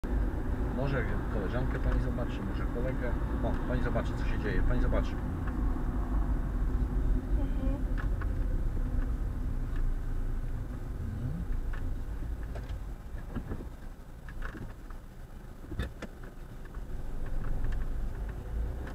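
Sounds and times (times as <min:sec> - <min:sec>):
car engine and road rumble: 0:00.0 - 0:18.9.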